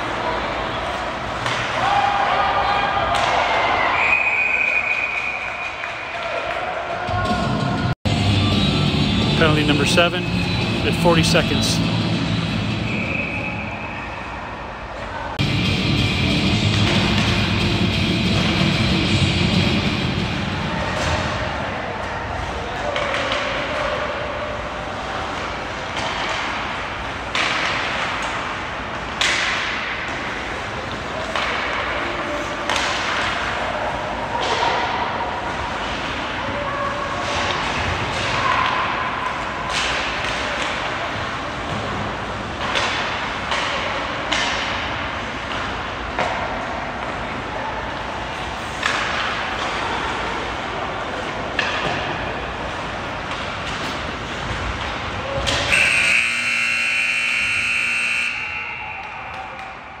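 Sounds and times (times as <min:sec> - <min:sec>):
arena horn: 0:55.7 - 0:58.7.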